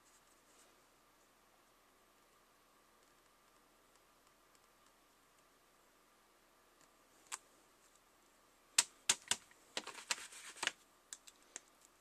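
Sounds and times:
sharp plastic clicks and taps: 8.8s - 11.9s.

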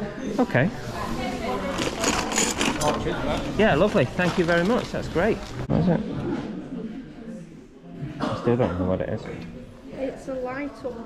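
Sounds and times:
plastic bag rustling: 1.5s - 5.6s.

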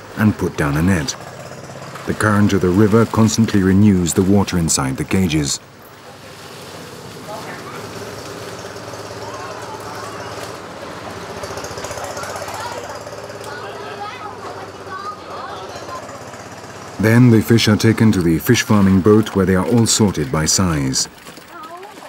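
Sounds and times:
small engine running: 0.0s - 22.0s
people's voices in background: 2.0s - 22.0s.

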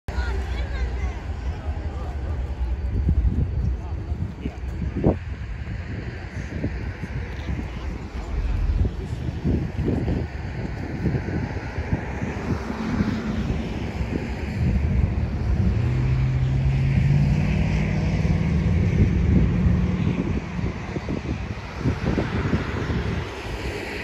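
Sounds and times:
passing engine drone: 0.1s - 24.0s
wind buffeting microphone: 0.1s - 24.0s.

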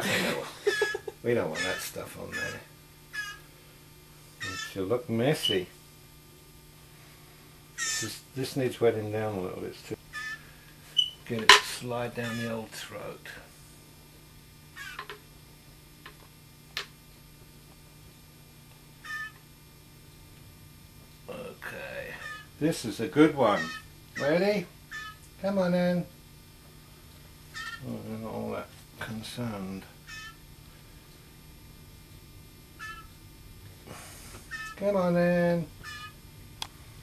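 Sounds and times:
young bird mewing calls: 0.6s - 3.5s, 4.4s - 4.8s, 7.8s - 8.2s, 10.1s - 11.2s, 12.2s - 12.6s, 14.8s - 15.1s, 19.0s - 19.4s, 22.1s - 22.6s, 23.4s - 25.2s, 27.5s - 27.9s, 30.0s - 30.4s, 32.8s - 33.2s, 34.4s - 34.8s, 35.8s - 36.2s.

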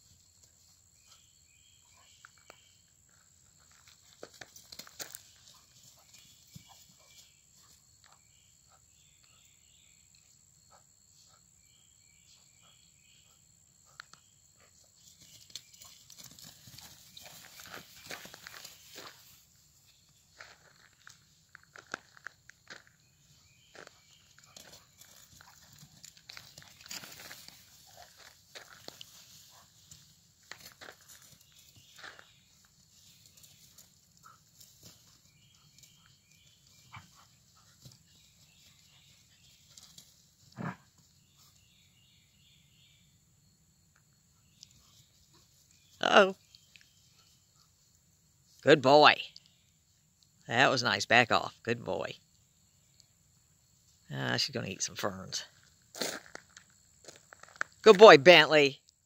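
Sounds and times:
crickets chirping: 0.0s - 59.0s
dogs scuffling in grass: 15.0s - 19.6s, 24.3s - 40.3s.

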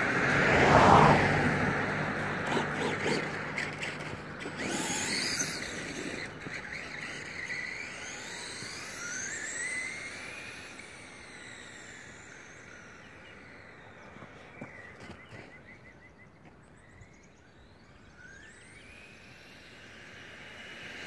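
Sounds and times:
electric motor whining: 0.0s - 15.8s, 17.1s - 21.0s.

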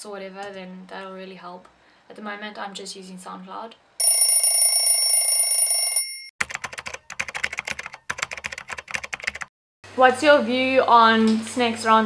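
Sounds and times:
typing on a keyboard: 6.4s - 9.5s.

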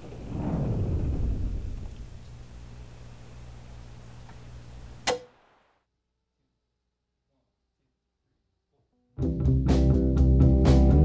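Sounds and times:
static hiss: 0.0s - 5.8s
television switch-off click: 2.2s - 5.4s.

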